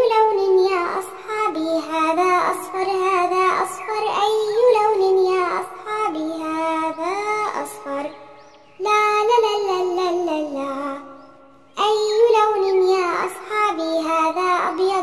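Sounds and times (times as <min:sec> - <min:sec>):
child singing: 0:00.0 - 0:15.0.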